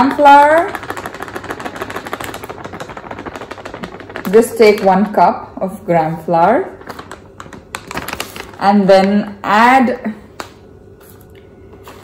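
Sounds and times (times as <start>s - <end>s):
plastic packet crinkling: 0.5s - 5.2s, 6.8s - 8.8s.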